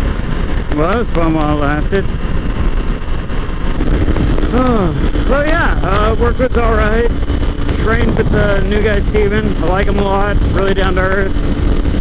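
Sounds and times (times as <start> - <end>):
motorcycle engine running: 0.0 - 12.0
road noise: 0.0 - 12.0
wind rushing over microphone: 0.0 - 12.0.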